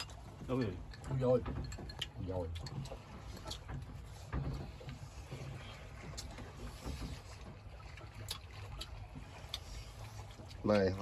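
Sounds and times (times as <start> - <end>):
boat engine rumble: 0.0 - 11.0.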